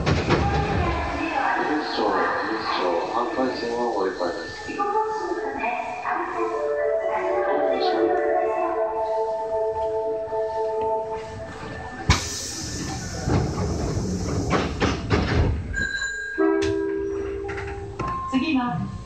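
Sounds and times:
train wheel and rail rumble: 0.0 - 19.0.

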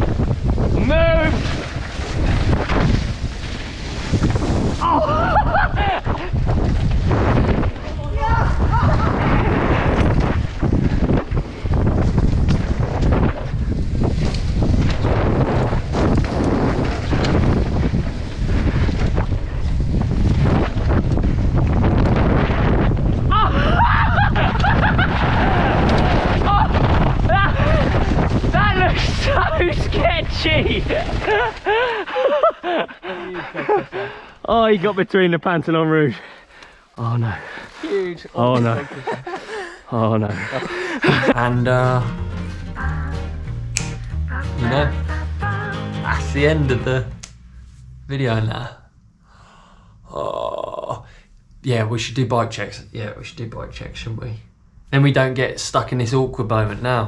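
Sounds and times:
wind buffeting microphone: 0.0 - 31.9
tyres roaring over dirt: 40.5 - 51.3.

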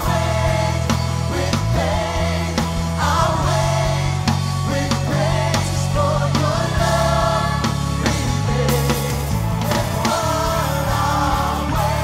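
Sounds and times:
bass line: 0.0 - 12.0
people singing: 0.0 - 12.0.

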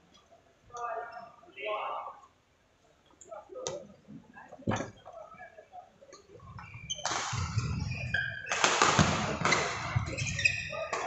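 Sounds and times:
sports hall noise: 0.0 - 11.0
sneakers squeaking: 6.4 - 11.0
racket hitting shuttlecock: 8.5 - 9.6.

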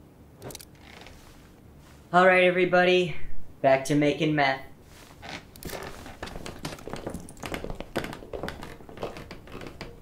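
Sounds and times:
clothing rustle: 0.8 - 2.2, 4.8 - 10.0
footsteps on wooden floor: 5.0 - 10.0.

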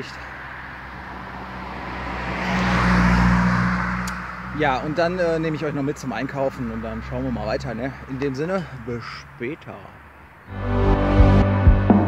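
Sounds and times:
car driving past: 0.4 - 5.1.

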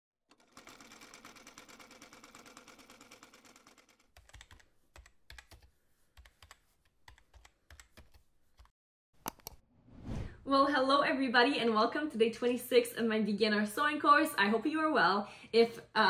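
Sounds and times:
keyboard typing clicks: 4.2 - 8.7.

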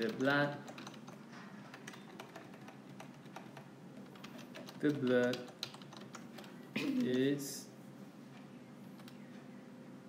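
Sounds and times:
touchscreen typing clicks: 0.0 - 7.3, 8.9 - 9.5.

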